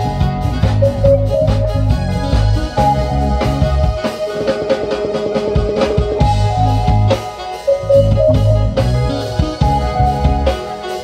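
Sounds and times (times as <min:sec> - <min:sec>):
low bass line: 0:00.0 - 0:04.0, 0:06.2 - 0:10.6
drum kit beat: 0:00.0 - 0:11.0
held melodic instrument notes: 0:00.0 - 0:11.0.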